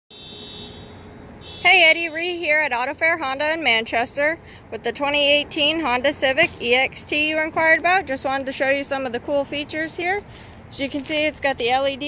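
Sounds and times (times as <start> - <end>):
woman speaking: 1.6 - 12.0.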